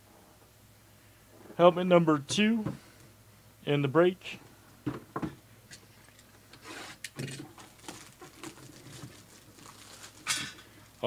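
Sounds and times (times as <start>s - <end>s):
handling and rubbing sounds: 5.8s - 11.0s
plastic shrink-wrap crinkling: 7.1s - 11.0s.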